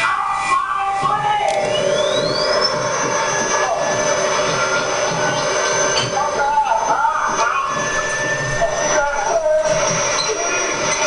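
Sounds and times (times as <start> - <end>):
high machine whine: 0.0 - 11.0
low machine tone: 0.0 - 11.0
steady rushing noise: 0.0 - 11.0.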